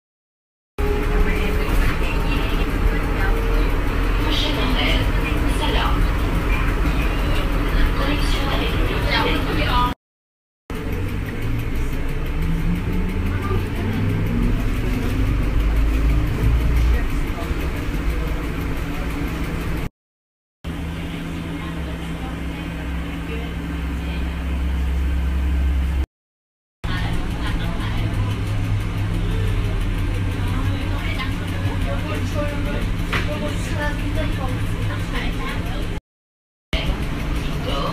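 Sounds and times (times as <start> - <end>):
road noise: 0.8 - 10.0, 10.7 - 19.9, 20.6 - 26.1, 26.8 - 36.0, 36.8 - 37.9
rising motor whine: 10.7 - 17.0.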